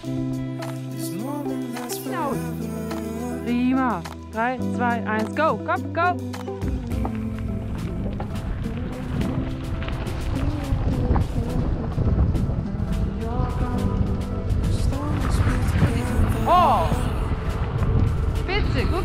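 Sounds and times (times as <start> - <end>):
bike tyres rolling on gravel: 6.7 - 19.0
wind rushing over microphone: 6.9 - 19.0.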